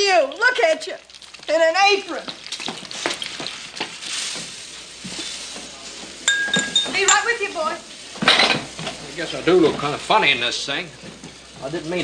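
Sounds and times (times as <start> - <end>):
frying sizzle: 0.0 - 12.0
crockery clinking: 6.2 - 7.4, 8.2 - 9.0
plates and pans clattering: 6.3 - 7.4, 8.2 - 9.0.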